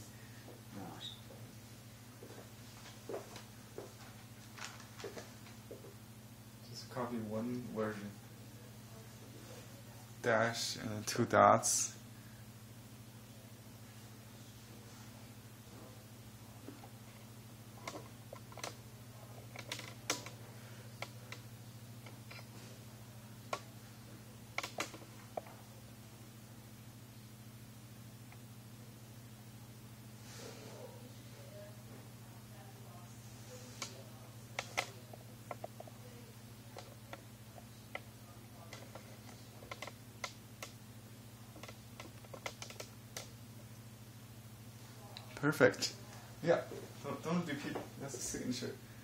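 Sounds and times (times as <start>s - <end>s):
steady low hum: 0.0s - 49.0s.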